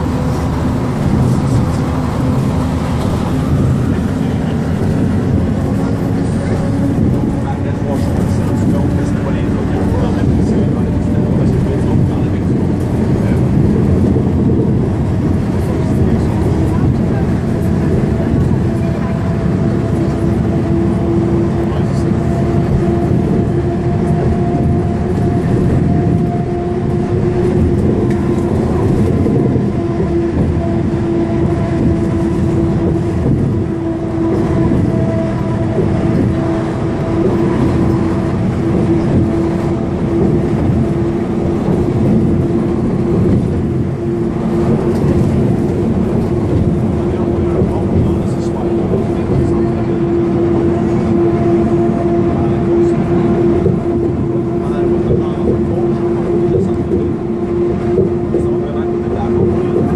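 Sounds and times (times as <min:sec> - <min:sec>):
bus engine and road drone: 0:00.0 - 0:59.9.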